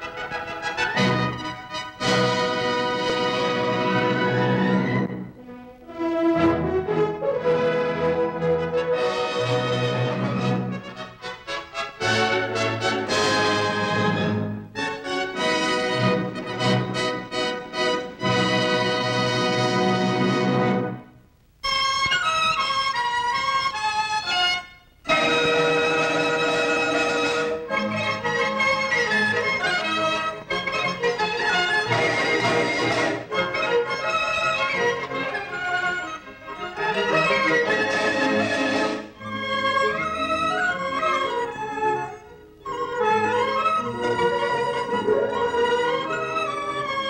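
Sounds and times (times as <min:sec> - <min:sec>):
orchestral music: 0:00.0 - 0:21.1, 0:25.1 - 0:47.0.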